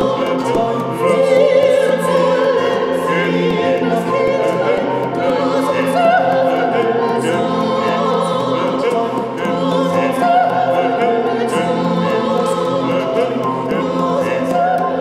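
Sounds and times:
choir singing with orchestra: 0.0 - 15.0.

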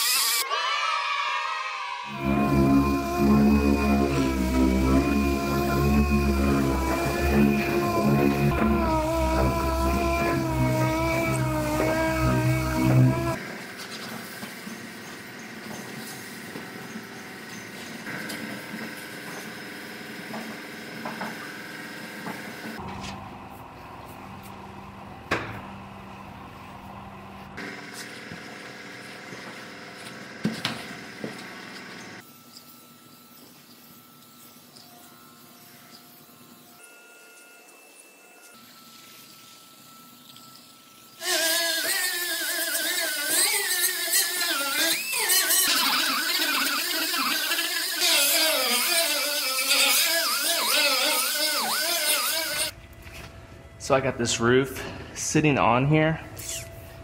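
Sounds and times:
die grinder whining: 2.1 - 13.7, 41.1 - 52.8.

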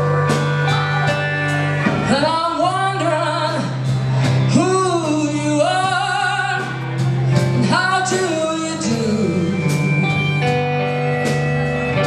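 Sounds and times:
live band music: 0.0 - 12.0.

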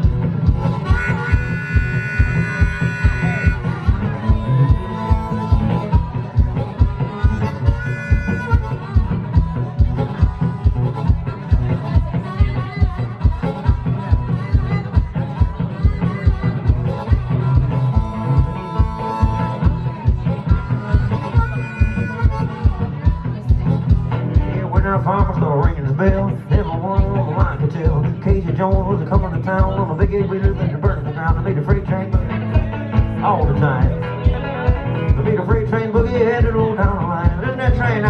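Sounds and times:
harmonica playing: 0.0 - 38.0
steady low beat: 0.0 - 38.0
strummed acoustic guitar: 0.0 - 38.0.

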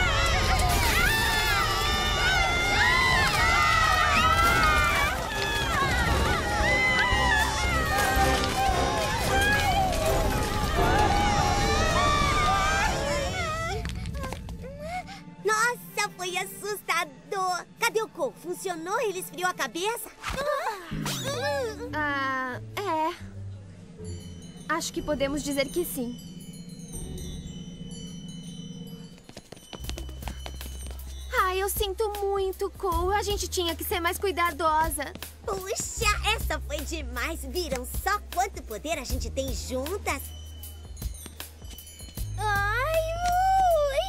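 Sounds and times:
chime-like shimmer: 23.9 - 31.3.

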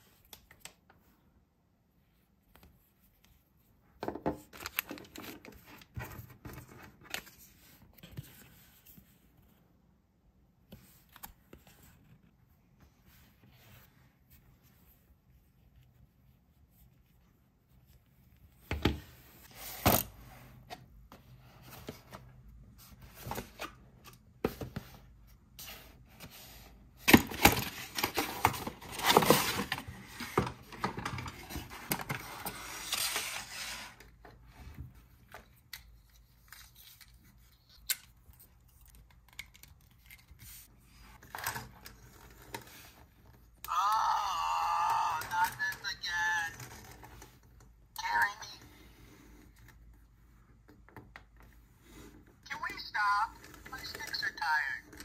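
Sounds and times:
talking toy recorded voice: 43.7 - 46.6, 48.0 - 48.7, 52.5 - 54.9.

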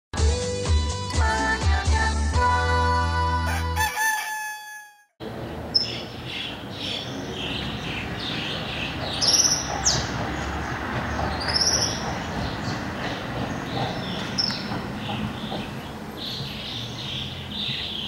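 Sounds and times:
rooster crowing: 3.4 - 5.1.

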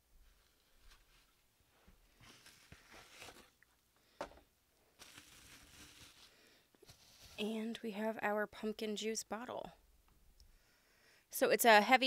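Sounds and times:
bubble wrap and cardboard crinkling: 0.2 - 3.7, 4.8 - 7.6.

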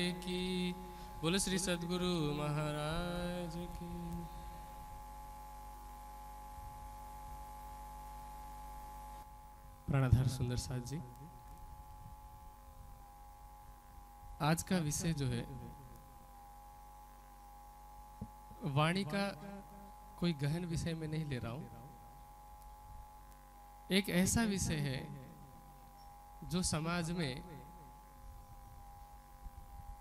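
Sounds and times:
faint electrical hum: 0.0 - 30.0.

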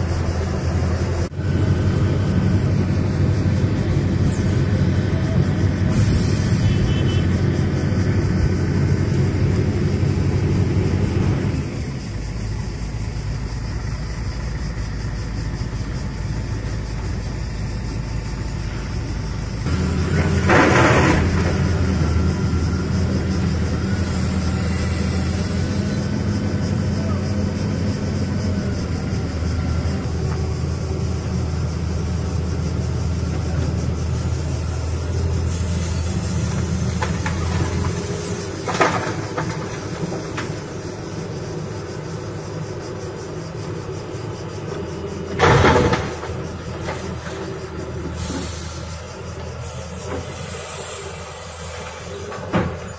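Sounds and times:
heavy diesel engines droning: 0.0 - 52.9.

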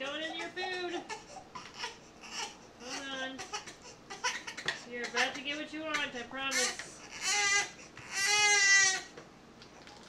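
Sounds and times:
baby crying: 0.2 - 5.4, 6.0 - 9.1.

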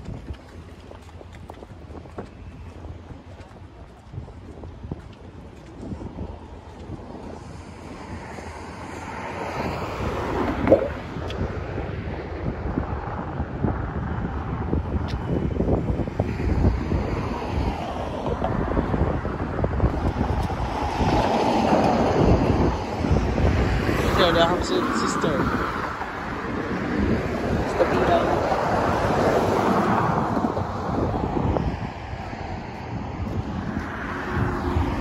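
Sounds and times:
road traffic rumble: 0.0 - 35.0
wind buffeting microphone: 0.0 - 35.0.

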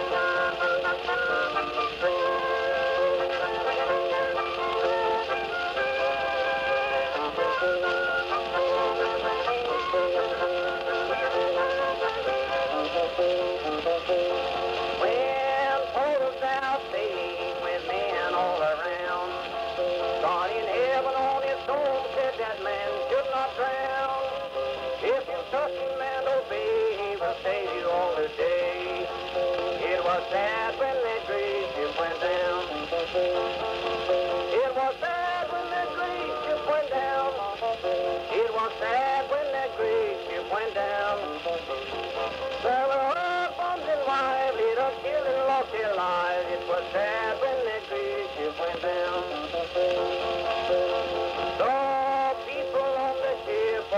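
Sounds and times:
old-time instrumental music: 0.0 - 53.9
record surface hiss: 0.0 - 53.9.

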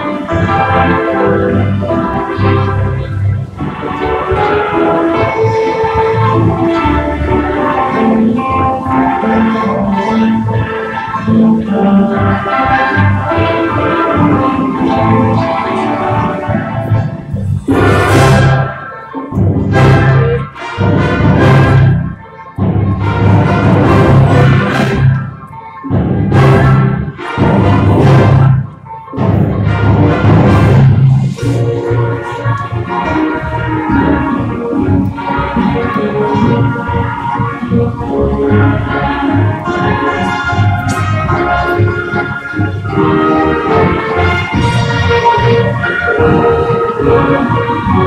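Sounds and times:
symphony orchestra playing film music: 0.0 - 48.0.

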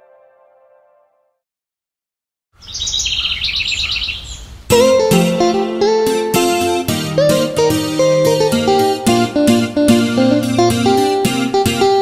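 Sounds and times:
birds chirping in trills: 2.6 - 5.4
plucked guitar-like tune: 4.7 - 12.0.

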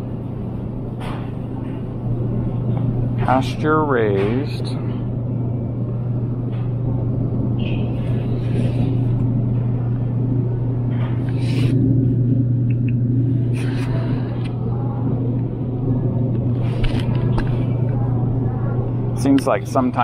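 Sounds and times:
refrigerator low hum: 0.0 - 20.0.

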